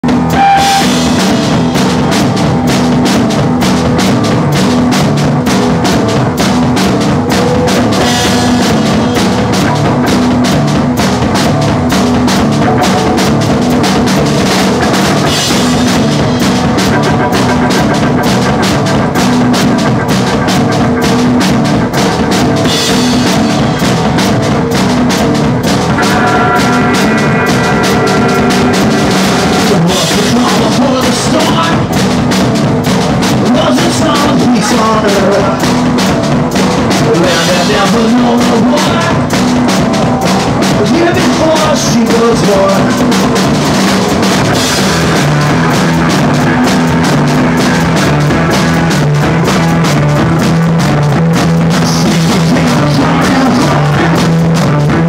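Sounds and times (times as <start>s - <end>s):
drum kit rapid beat: 0.0s - 55.0s
rock band playing fast: 0.0s - 55.0s.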